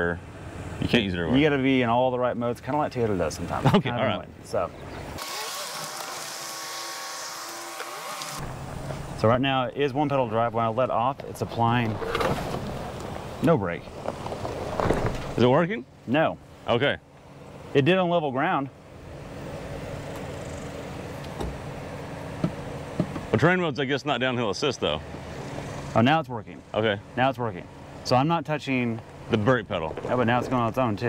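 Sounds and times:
truck engine rumble: 8.3s - 31.0s.

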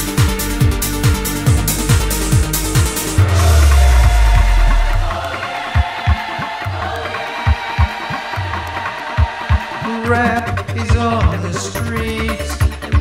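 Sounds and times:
electro-pop disco music: 0.0s - 13.0s
heavy bass note: 2.7s - 5.3s.

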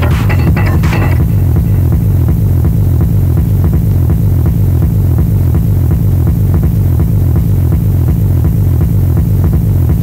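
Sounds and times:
heavy pulsing bass: 0.0s - 10.0s.

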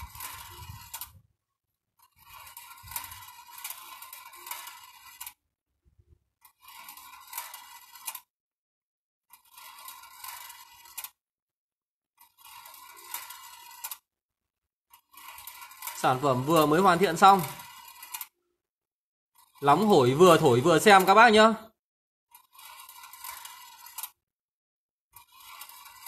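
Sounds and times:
steel balls rolling and clinking: 2.0s - 5.4s, 6.4s - 8.3s, 9.3s - 11.2s, 12.2s - 14.0s, 14.9s - 18.3s, 19.4s - 21.4s, 22.3s - 24.2s, 25.2s - 26.0s.

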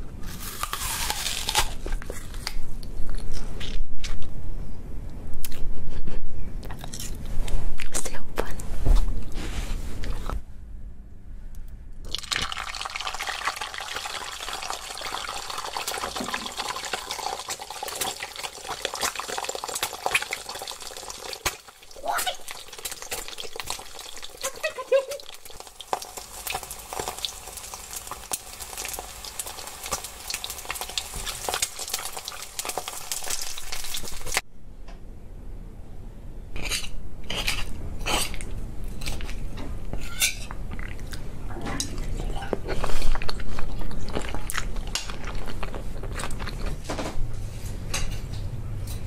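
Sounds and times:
egg sizzling in hot oil: 12.1s - 34.4s
oil popping and spitting: 12.1s - 34.4s
person squealing exclamation: 22.0s - 22.5s, 24.4s - 25.4s.

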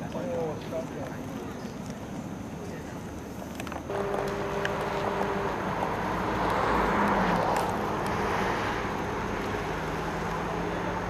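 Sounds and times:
vehicle passing by: 3.9s - 11.0s.

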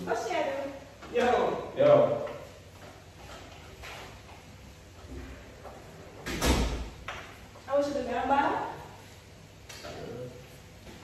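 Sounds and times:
door shutting with heavy bang: 6.2s - 7.0s.

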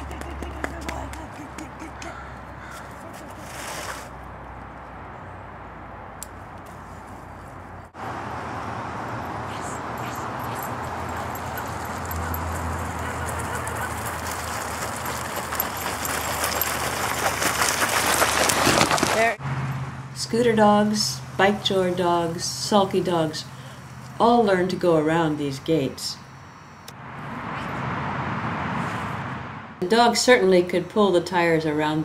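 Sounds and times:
tire scraping over ground: 2.6s - 4.5s, 10.7s - 19.4s.

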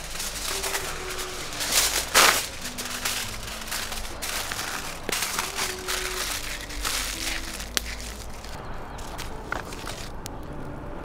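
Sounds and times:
kitchen foil crinkling: 0.0s - 10.2s.

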